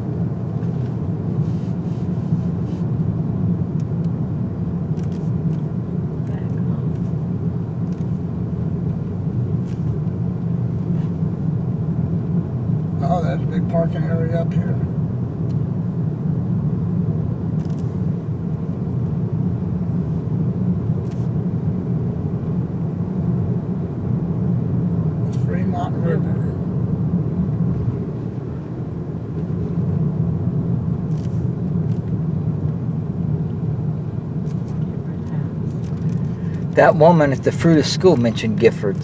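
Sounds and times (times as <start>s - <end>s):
car engine and tyres drone: 0.0s - 39.0s.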